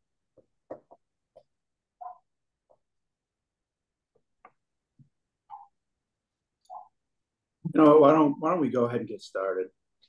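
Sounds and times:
man speaking: 0:07.6 - 0:09.8.

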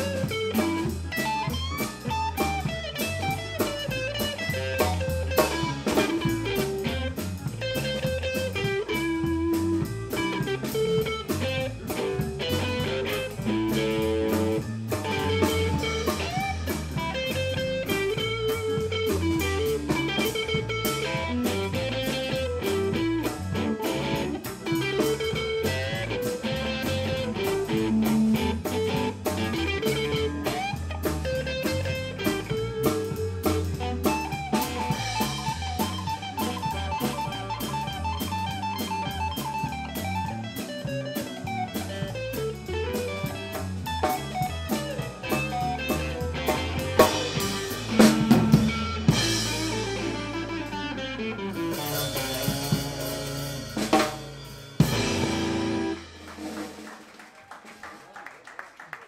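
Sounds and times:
electric guitar: 0:00.0 - 0:56.9
bass guitar: 0:00.0 - 0:57.0
drum kit beat: 0:00.0 - 0:57.2.

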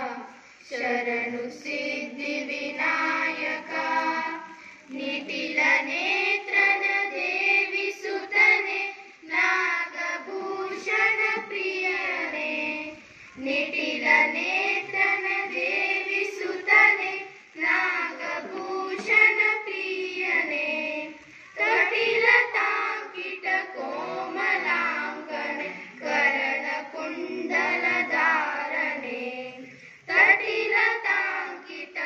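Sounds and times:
children singing in unison: 0:00.0 - 0:32.0.

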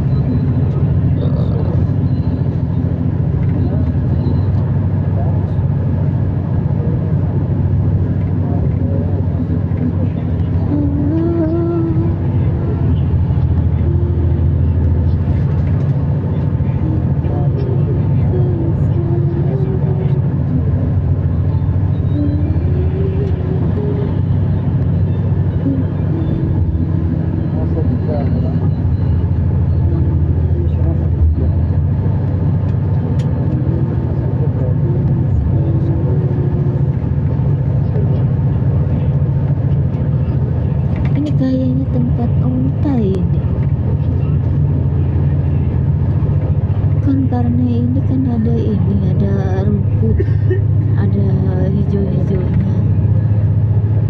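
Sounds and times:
people talking: 0:00.0 - 0:02.2, 0:03.4 - 0:04.4, 0:05.0 - 0:05.6, 0:06.7 - 0:07.5, 0:08.2 - 0:21.0, 0:22.0 - 0:24.4, 0:25.6 - 0:29.1, 0:29.8 - 0:31.7, 0:33.2 - 0:45.8, 0:47.0 - 0:53.1
vehicle engine and road noise: 0:00.0 - 0:54.0.

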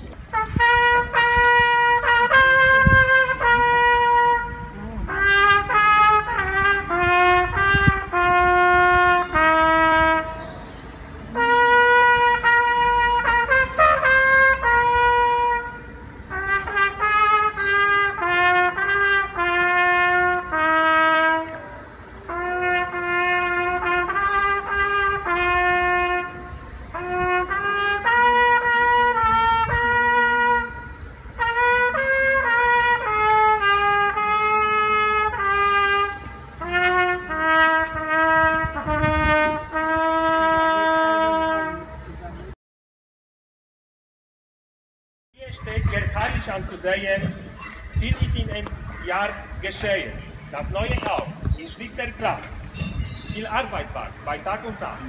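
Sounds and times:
solo trumpet slow melody: 0:00.2 - 0:42.1.

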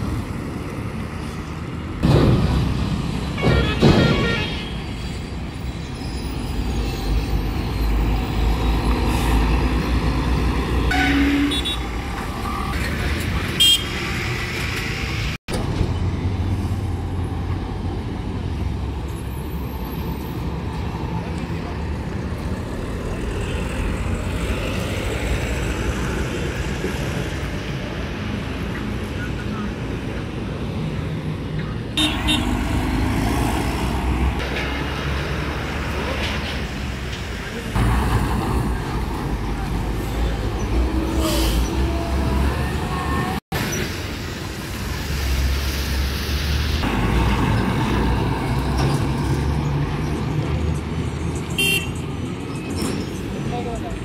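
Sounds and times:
vehicles passing: 0:00.0 - 0:54.0
car horn toots: 0:10.9 - 0:11.8, 0:32.0 - 0:32.5.

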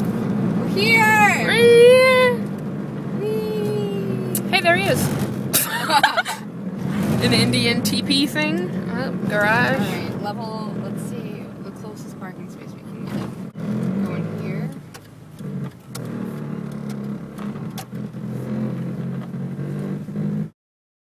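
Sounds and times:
car engine and road hum: 0:00.0 - 0:20.5.

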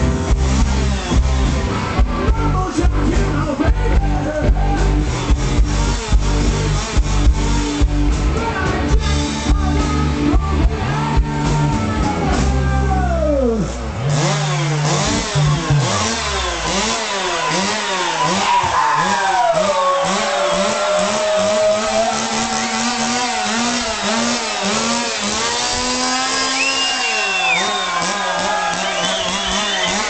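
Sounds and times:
synthesizer imitating chainsaw: 0:00.0 - 0:30.0.

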